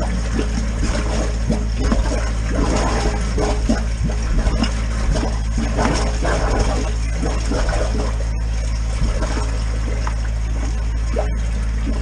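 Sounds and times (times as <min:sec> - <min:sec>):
steady low drone: 0:00.0 - 0:12.0
water splashing and gurgling in drain: 0:00.0 - 0:12.0.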